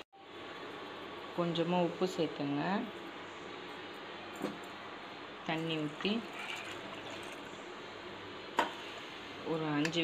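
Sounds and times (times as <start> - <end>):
water pouring into pot: 5.8 - 7.6.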